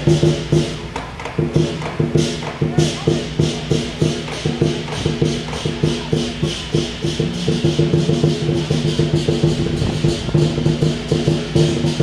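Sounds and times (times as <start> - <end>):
cymbal crashes: 0.0 - 12.0
percussion band fast beat: 0.0 - 12.0.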